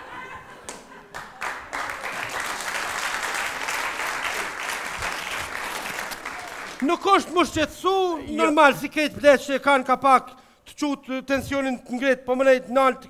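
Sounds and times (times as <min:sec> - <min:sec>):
audience applauding: 0:00.6 - 0:07.4
man speaking: 0:06.8 - 0:13.0.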